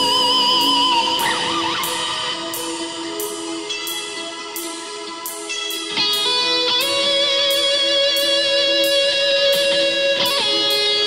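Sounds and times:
cymbal ticking: 0.0 - 11.0
electric guitar ringing chords: 0.0 - 11.0.

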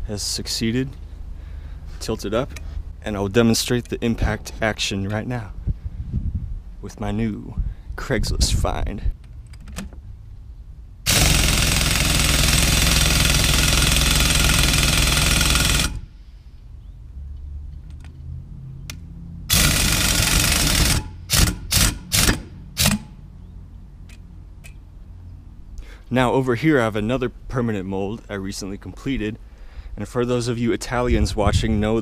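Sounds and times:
pneumatic impact wrench hammering: 11.0 - 16.1, 19.5 - 23.2.

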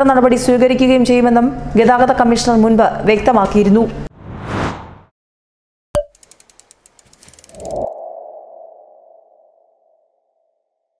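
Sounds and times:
sharp click: 6.0 - 7.9
quick run of ticks: 6.1 - 7.9.

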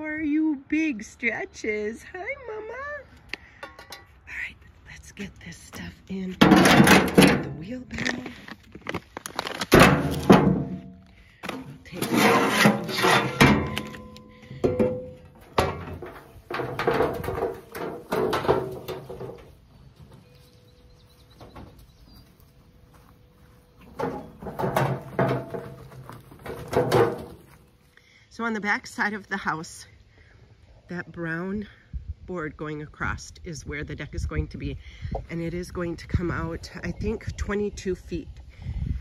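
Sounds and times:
shovels rattling in a wheelbarrow: 11.8 - 14.7.

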